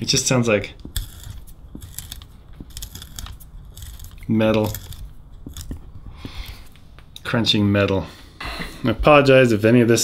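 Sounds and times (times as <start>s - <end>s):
screws crunching into metal: 0.8s - 6.8s.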